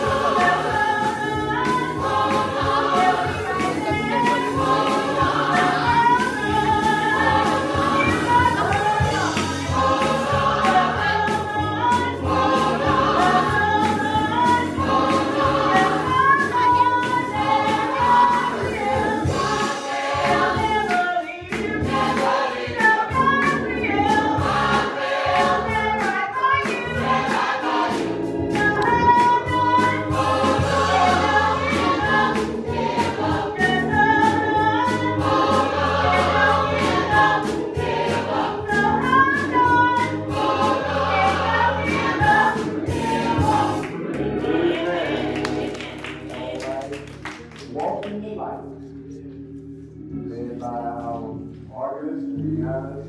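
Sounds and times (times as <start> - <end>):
sustained bass notes: 0.0 - 20.9, 26.8 - 53.0
steady beat: 0.0 - 46.0
gospel choir singing: 0.0 - 47.2.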